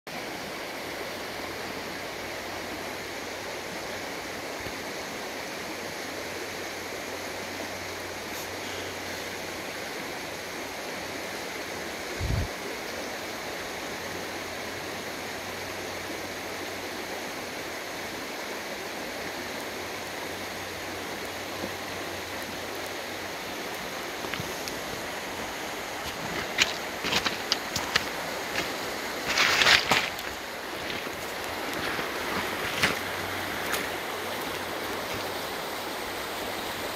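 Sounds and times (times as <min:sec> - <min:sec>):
river running over stones: 0:00.1 - 0:36.9.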